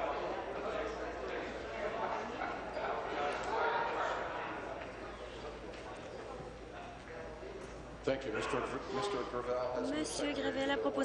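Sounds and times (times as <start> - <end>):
murmur of many people talking: 0.0 - 11.0.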